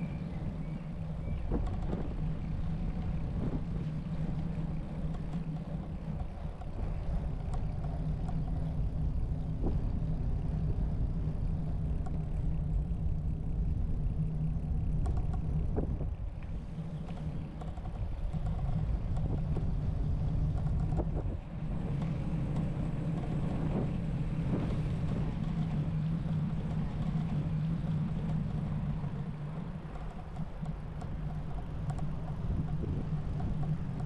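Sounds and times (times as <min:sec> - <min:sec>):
bicycle tyres rumbling on asphalt: 0:00.0 - 0:34.0
wind on microphone: 0:00.0 - 0:34.0
light knocks and rattles: 0:01.4 - 0:10.8, 0:14.9 - 0:34.0.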